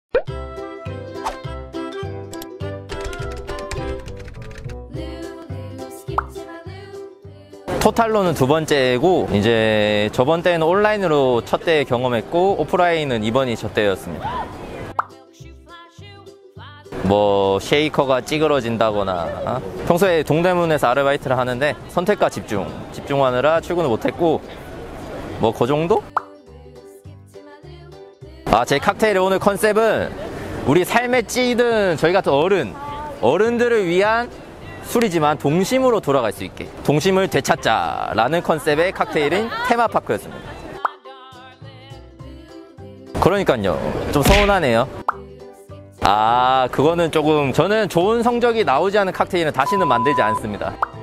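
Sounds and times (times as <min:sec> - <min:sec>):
pop sound effect: 0:00.1 - 0:00.4, 0:01.2 - 0:01.5, 0:06.1 - 0:06.4, 0:14.9 - 0:15.2, 0:26.1 - 0:26.4, 0:44.2 - 0:45.3, 0:50.8 - 0:51.0
light background music: 0:00.2 - 0:51.0.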